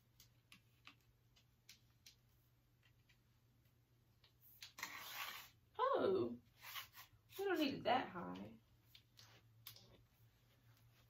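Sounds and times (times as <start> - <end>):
woman's voice: 5.8 - 6.4, 7.4 - 8.6.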